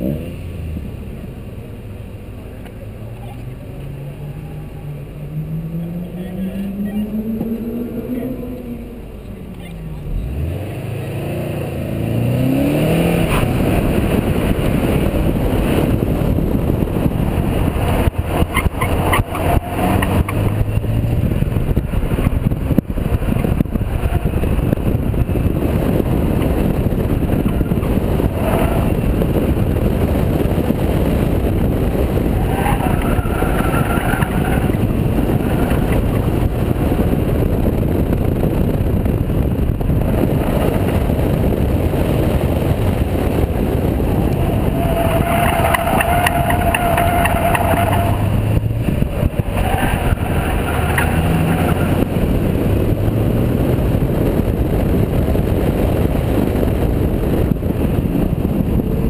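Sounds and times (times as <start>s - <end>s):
car engine revving and accelerating: 0.0s - 59.0s
wind on microphone: 10.0s - 59.0s.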